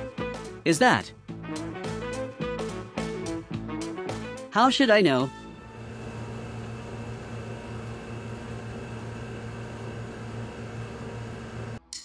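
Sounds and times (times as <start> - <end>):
crane motor humming: 5.6 - 11.8.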